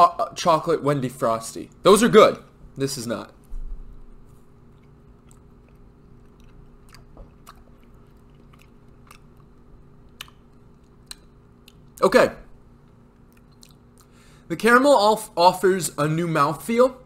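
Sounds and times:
chewing with mouth clicks: 4.3 - 12.0, 12.8 - 14.2.

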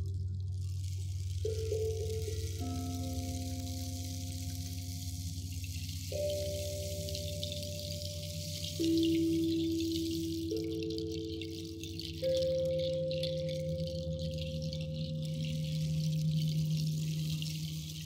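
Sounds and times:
meditative electronic keyboard music: 0.0 - 18.0.

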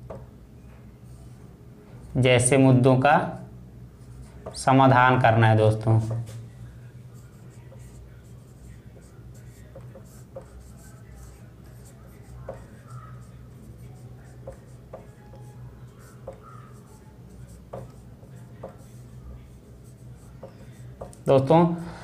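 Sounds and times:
low steady hum: 0.0 - 22.0
marker scratching on whiteboard: 7.2 - 21.3.

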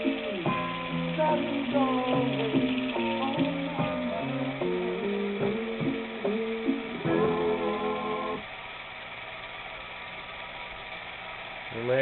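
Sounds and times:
movie projector whirring: 0.0 - 12.0.

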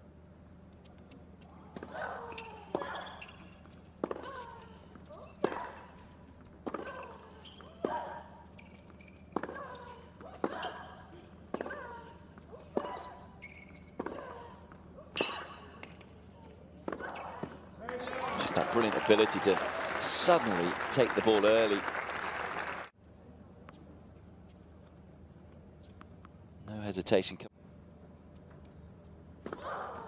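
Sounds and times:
tennis racket hitting ball: 4.0 - 6.0, 6.6 - 8.3, 9.3 - 10.9, 13.9 - 14.4.

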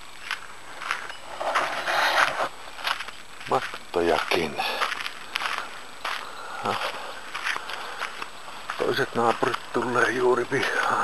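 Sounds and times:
footsteps scuffing on dry grass: 0.0 - 11.0
grass rustling: 0.0 - 11.0.

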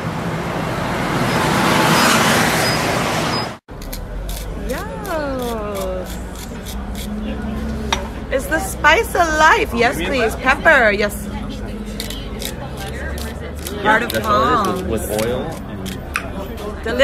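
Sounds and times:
loud street traffic: 0.0 - 17.0.

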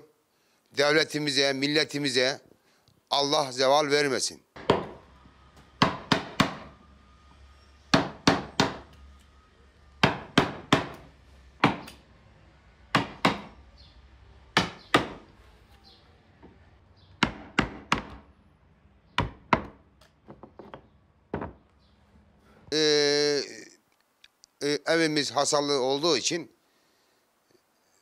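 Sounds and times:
mallet striking chisel handle: 10.0 - 11.0, 11.6 - 12.0, 12.9 - 13.6, 14.6 - 15.2.

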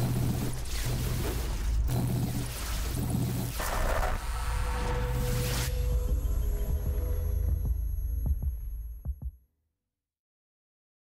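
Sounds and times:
deep bass drone: 0.0 - 9.2
steady tone: 1.9 - 9.2.

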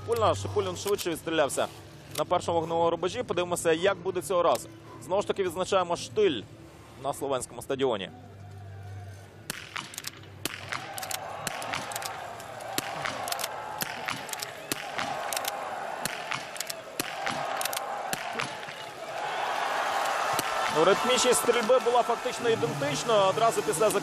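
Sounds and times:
rifle shots: 9.5 - 18.8
crowd cheering: 10.5 - 24.0.

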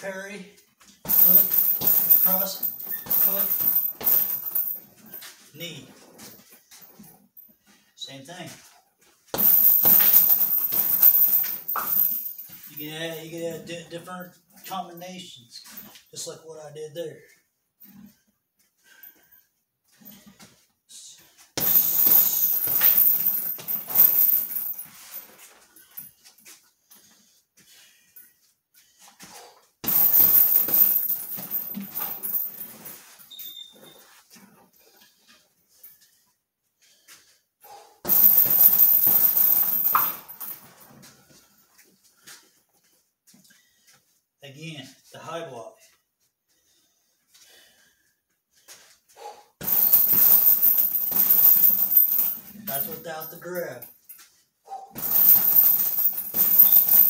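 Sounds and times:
punches hitting heavy bag: 1.1 - 4.7, 9.4 - 12.2, 21.6 - 24.7, 29.8 - 32.6, 38.1 - 40.3, 49.6 - 52.3, 55.0 - 57.0.

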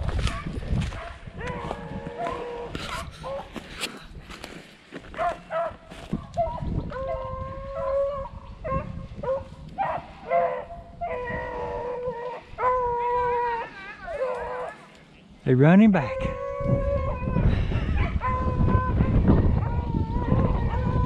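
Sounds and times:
dry brush crackling underfoot: 0.0 - 7.7
dogs baying: 0.2 - 3.6, 5.1 - 14.9, 16.6 - 21.0.

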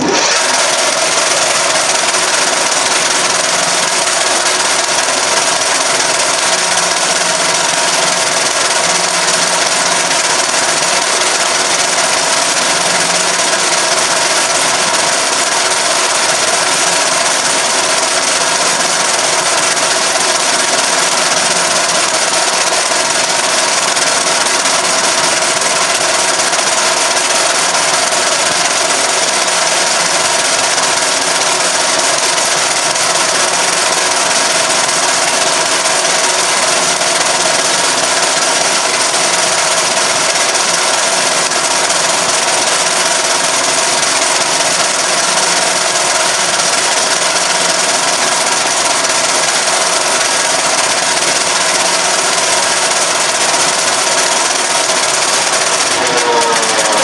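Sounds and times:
metal lathe running: 0.0 - 57.0.

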